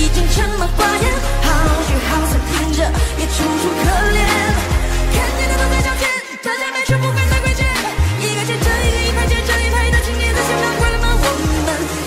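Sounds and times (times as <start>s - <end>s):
pop song with singing: 0.0s - 12.0s.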